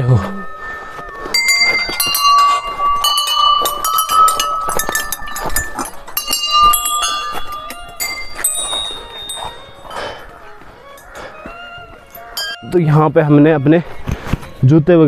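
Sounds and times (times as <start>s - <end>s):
small brass bells ringing: 1.3s - 11.4s, 12.0s - 12.8s.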